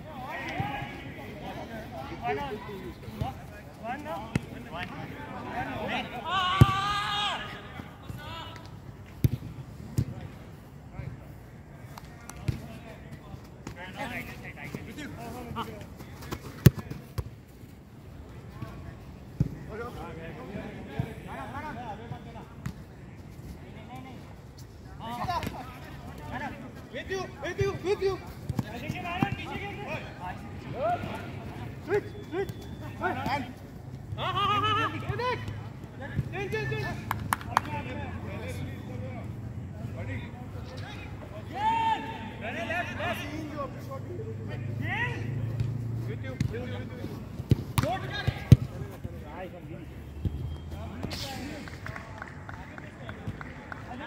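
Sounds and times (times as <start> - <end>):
players shouting: 3.9 - 8.6, 26.3 - 37.0, 40.9 - 43.7
ball being kicked: 47.4 - 48.8.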